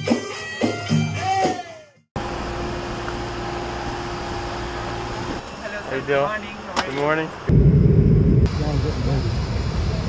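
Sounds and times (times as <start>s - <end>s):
folk music with drumming and rattles: 0.0s - 2.0s
mechanical drone with low hum: 7.5s - 10.0s.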